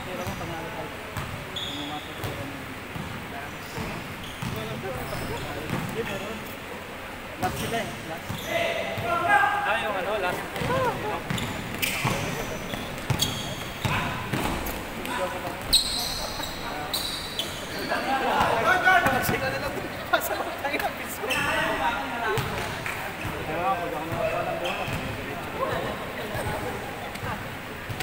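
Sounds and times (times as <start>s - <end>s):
sneakers squeaking on wooden court: 0.1s - 0.5s, 1.2s - 6.4s, 7.4s - 9.1s, 10.5s - 20.0s, 20.7s - 28.0s
basketball bouncing: 4.4s - 4.8s, 10.6s - 14.9s, 22.4s - 23.4s, 24.9s - 25.2s.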